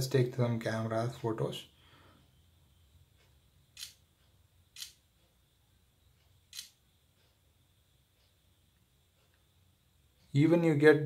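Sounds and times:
phone camera shutter clicks: 6.5s - 6.8s.

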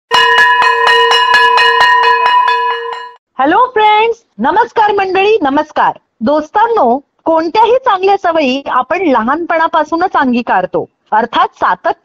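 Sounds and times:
bell struck rapidly: 0.1s - 3.2s.

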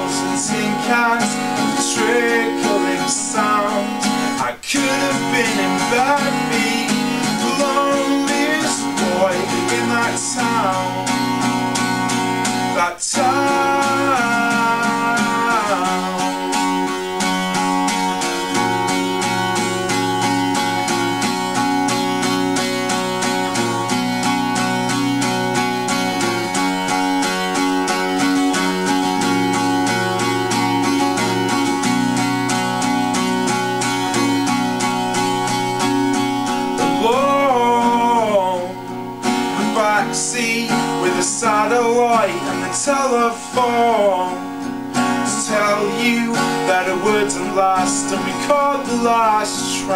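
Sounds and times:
person singing long notes: 0.0s - 11.4s, 12.7s - 21.1s, 35.2s - 44.6s, 45.2s - 49.9s
acoustic guitar strummed: 0.0s - 49.9s.

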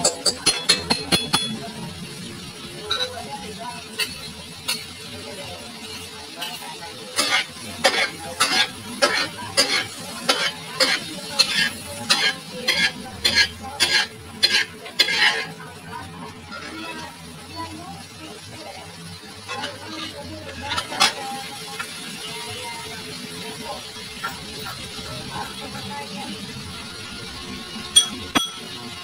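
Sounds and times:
egg sizzling in a wok: 0.0s - 29.0s
metal spatula scraping pan: 7.2s - 15.6s, 19.4s - 21.2s.

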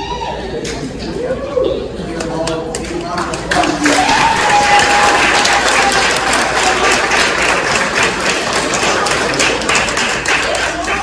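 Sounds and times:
audience applauding: 3.4s - 11.0s.

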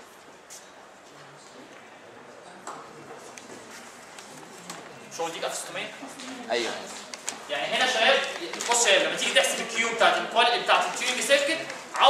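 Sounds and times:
paper pages rustling: 6.8s - 12.0s.

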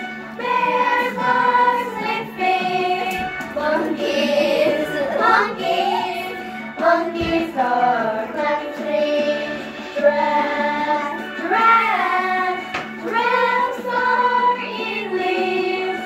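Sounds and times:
children singing: 0.0s - 16.0s.

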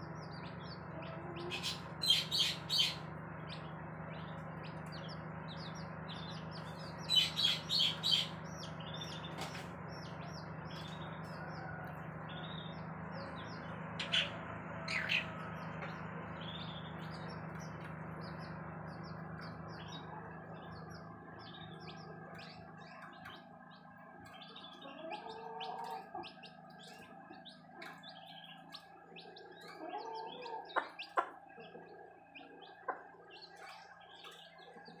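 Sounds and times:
chicks peeping: 0.0s - 35.0s.

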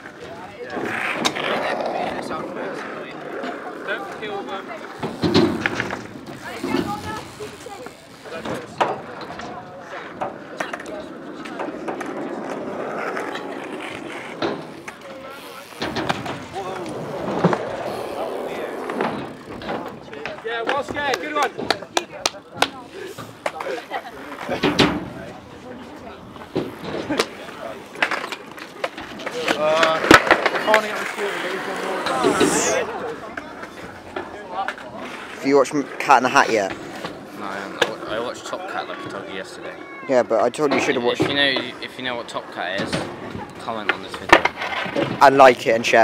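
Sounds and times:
scooter rolling on concrete: 0.0s - 46.0s
boys calling out: 38.9s - 40.4s.

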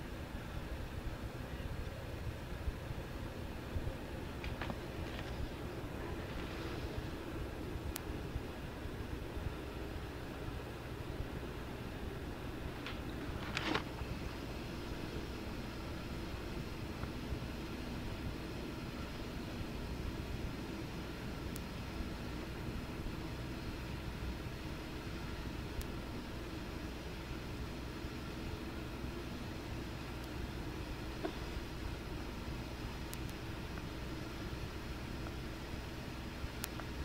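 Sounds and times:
cassette tape hiss and hum: 0.0s - 37.0s
faint ticks: 33.0s - 34.0s, 36.4s - 37.0s.

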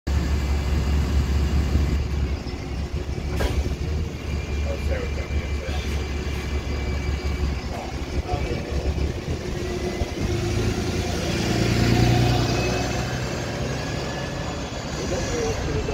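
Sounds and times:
bus pulling away: 0.1s - 15.9s
diesel bus engine idling: 0.1s - 15.9s.

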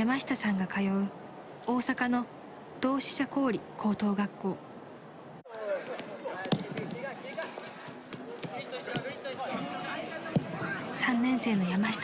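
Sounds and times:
players calling out: 5.5s - 12.0s
soccer ball kicked thuds: 5.9s - 9.7s, 10.3s - 10.8s.

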